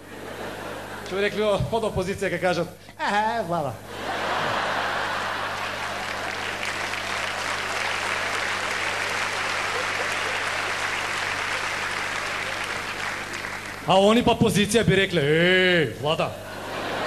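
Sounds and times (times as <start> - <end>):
audience applauding: 4.2 - 14.1.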